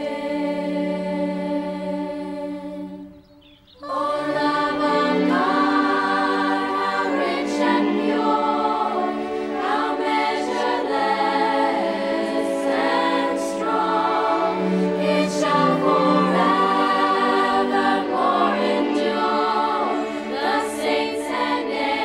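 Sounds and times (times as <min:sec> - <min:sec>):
choir of young voices singing: 0:00.0 - 0:22.0
string orchestra held notes: 0:03.9 - 0:22.0.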